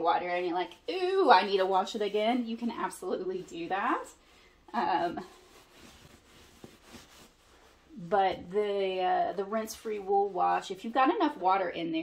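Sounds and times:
hands rubbing damp towel: 0:00.2 - 0:11.5.

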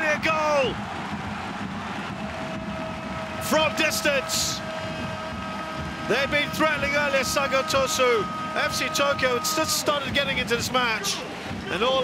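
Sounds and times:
stadium crowd roaring: 0:00.0 - 0:12.0.

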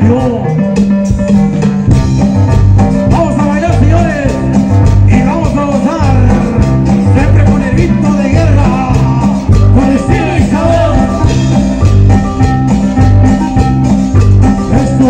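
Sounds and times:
live latin dance band: 0:00.0 - 0:15.0.

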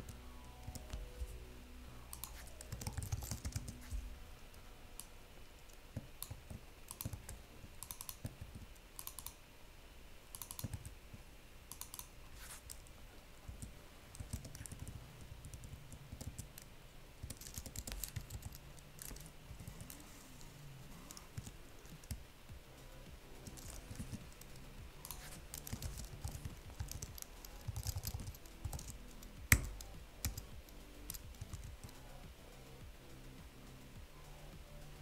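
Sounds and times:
computer keyboard typing: 0:00.0 - 0:01.4, 0:02.0 - 0:04.1, 0:06.0 - 0:09.4, 0:10.3 - 0:11.0, 0:11.7 - 0:12.9, 0:13.5 - 0:20.1, 0:20.9 - 0:22.2, 0:23.4 - 0:32.1.

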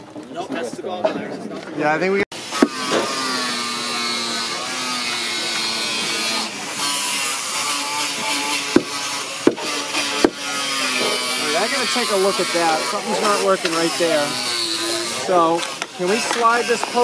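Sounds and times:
power tool motor running: 0:02.4 - 0:17.0
sharp knocks: 0:08.7 - 0:11.3.

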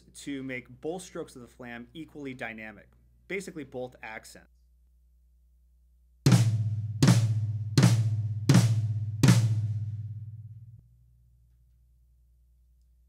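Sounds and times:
drum flams on tom and snare: 0:06.3 - 0:10.1.

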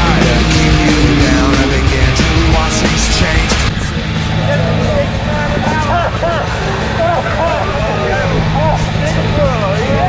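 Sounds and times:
steady low rumble: 0:00.0 - 0:07.0.

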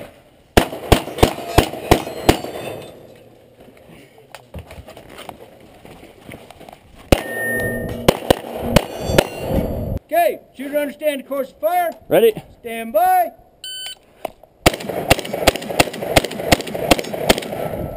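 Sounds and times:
pistol shots: 0:00.6 - 0:02.9, 0:07.1 - 0:09.4, 0:14.6 - 0:17.7
steel targets clanging: 0:01.1 - 0:03.4.

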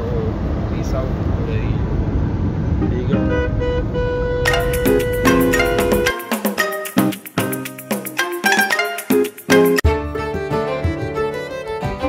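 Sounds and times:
car road and engine rumble: 0:00.0 - 0:04.5
music: 0:02.8 - 0:12.0
held tones: 0:04.5 - 0:09.8.

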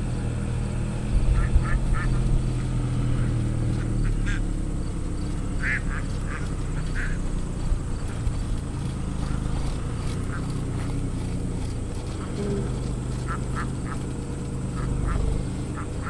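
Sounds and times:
ducks quacking: 0:01.3 - 0:04.5, 0:05.6 - 0:07.3, 0:10.2 - 0:11.1, 0:12.0 - 0:16.0.

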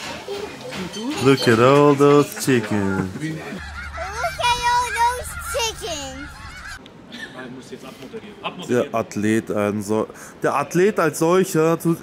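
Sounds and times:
geese honking: 0:03.6 - 0:06.8.

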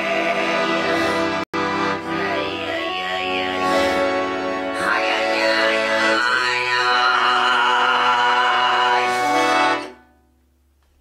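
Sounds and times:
button accordion holding a chord: 0:00.0 - 0:10.0.

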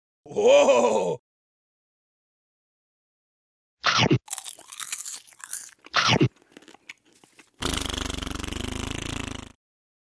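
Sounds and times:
crisp food being chewed: 0:04.3 - 0:07.6.

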